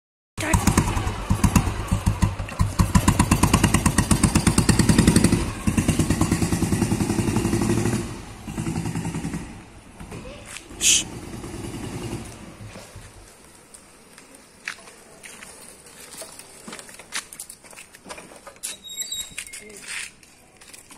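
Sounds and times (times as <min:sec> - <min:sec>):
motorcycle engine pulsing: 0:00.4 - 0:09.9.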